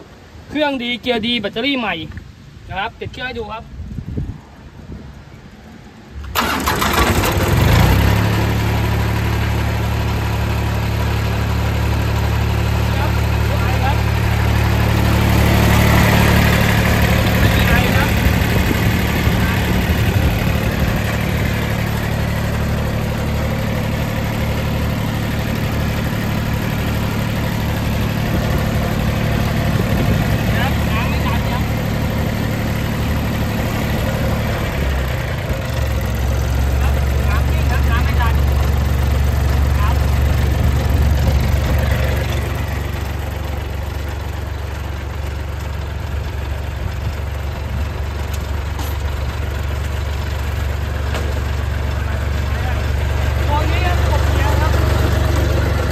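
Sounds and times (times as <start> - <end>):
engine cranking and starting: 6.2 - 9.0
engine idling: 6.2 - 55.9.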